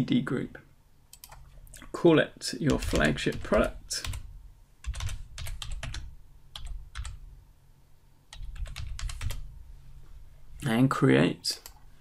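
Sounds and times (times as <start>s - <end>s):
computer keyboard typing: 1.1s - 1.5s, 2.7s - 7.2s, 8.3s - 9.5s.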